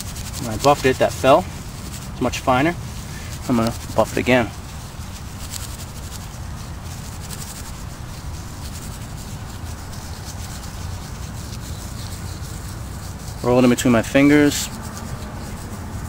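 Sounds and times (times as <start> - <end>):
dry grass rubbed between hands: 0.0 - 16.0
low rumble: 14.0 - 16.0.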